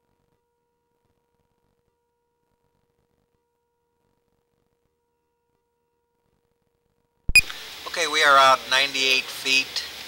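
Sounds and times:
brief high blip: 0:07.3 - 0:07.6
steady low hiss: 0:07.3 - 0:10.0.

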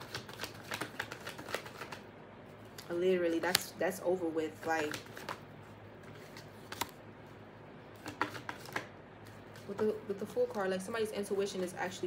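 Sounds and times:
cards shuffling: 0:00.0 - 0:02.0, 0:04.6 - 0:05.4, 0:06.0 - 0:07.0, 0:08.0 - 0:09.8.

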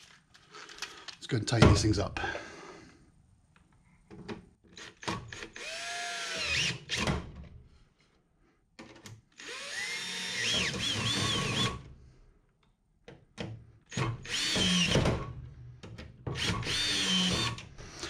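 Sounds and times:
cordless drill driving bolts: 0:04.8 - 0:07.1, 0:09.4 - 0:11.8, 0:13.9 - 0:15.0, 0:16.4 - 0:18.0.

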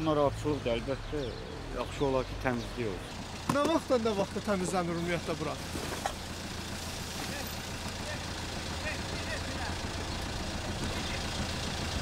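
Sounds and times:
low engine hum: 0:00.0 - 0:12.0
street traffic: 0:00.0 - 0:12.0.

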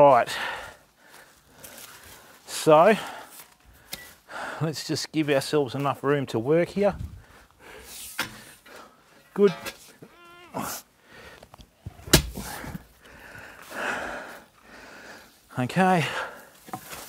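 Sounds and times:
rustle of soil and leaves: 0:00.0 - 0:04.3, 0:15.2 - 0:17.0
garden tool thudding into soil: 0:12.1 - 0:12.6.

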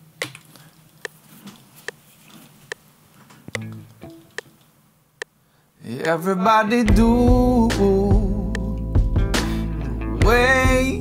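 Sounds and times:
faint backing track with guitar: 0:03.4 - 0:04.7, 0:06.8 - 0:11.0.

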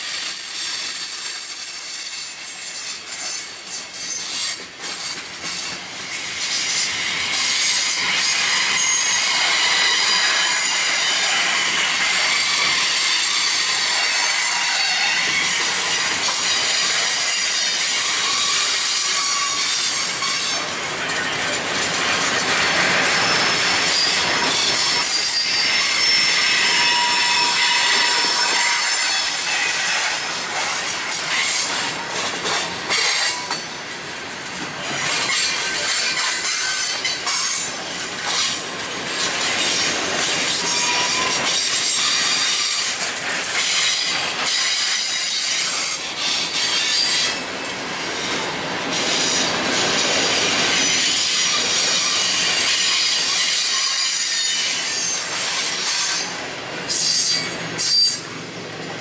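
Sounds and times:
freight train rolling past: 0:00.0 - 0:59.0
wheels squealing on rails: 0:00.0 - 0:59.0
wheels clicking over rail joints: 0:27.4 - 0:58.3.

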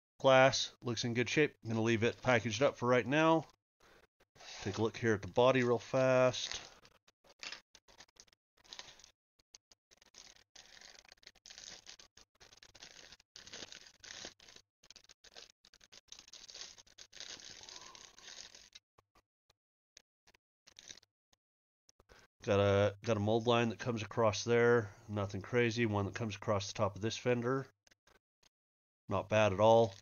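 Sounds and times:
plastic bag crinkling: 0:06.3 - 0:09.1, 0:09.9 - 0:18.8, 0:20.7 - 0:21.0.

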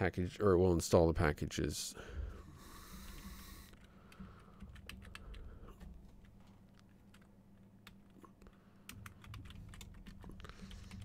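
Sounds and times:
computer keyboard typing: 0:02.8 - 0:11.0.

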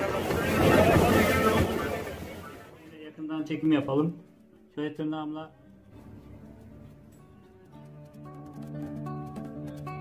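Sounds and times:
voices talking: 0:00.0 - 0:03.1
water: 0:00.0 - 0:03.7.

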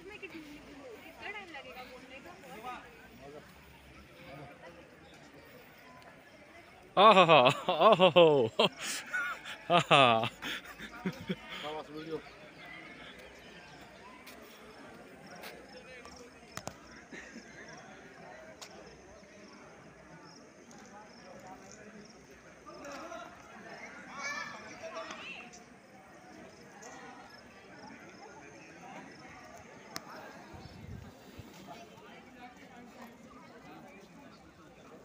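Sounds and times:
indistinct chatter: 0:00.0 - 0:35.0
footsteps on stone paving: 0:13.1 - 0:15.7.

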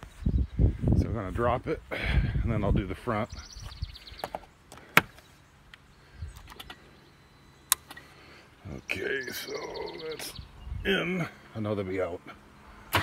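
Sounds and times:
sharp clicks: 0:04.2 - 0:06.9, 0:07.6 - 0:08.1.

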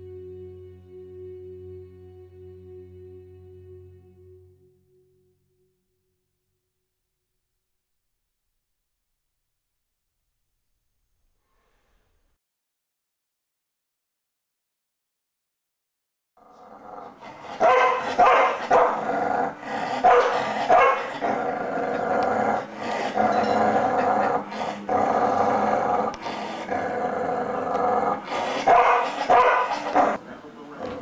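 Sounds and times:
dog howling: 0:16.5 - 0:30.2
dog barking: 0:17.3 - 0:19.1, 0:19.9 - 0:21.4, 0:28.1 - 0:30.2.

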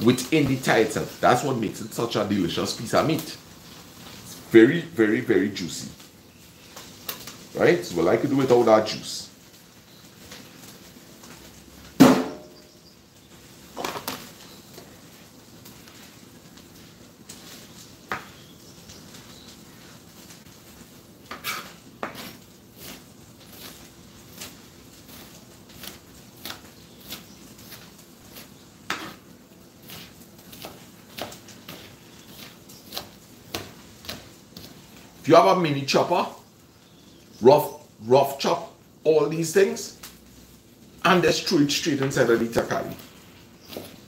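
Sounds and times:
knife chopping on a plastic board: 0:29.8 - 0:34.7.

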